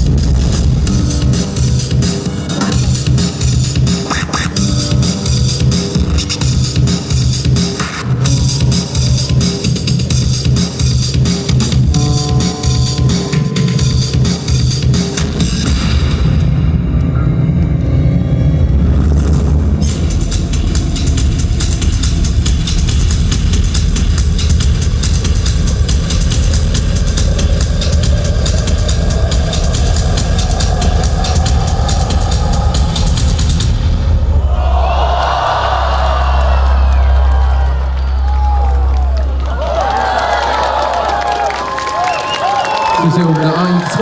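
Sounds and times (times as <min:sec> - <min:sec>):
dance music with deep bass: 0:00.0 - 0:16.0, 0:19.3 - 0:34.3
crowd cheering: 0:08.0 - 0:11.2, 0:34.1 - 0:44.0
low bass tone: 0:08.2 - 0:41.0.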